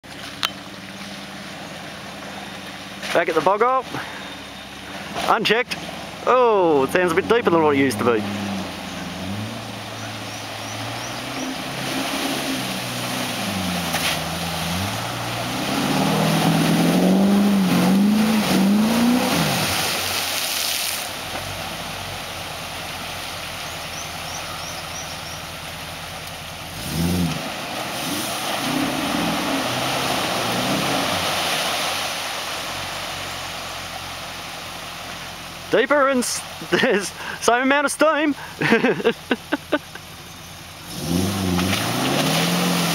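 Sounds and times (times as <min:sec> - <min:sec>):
churning mud and water: 0:00.0 - 0:42.9
car engine revving: 0:04.4 - 0:20.2, 0:24.6 - 0:31.8, 0:40.7 - 0:42.9.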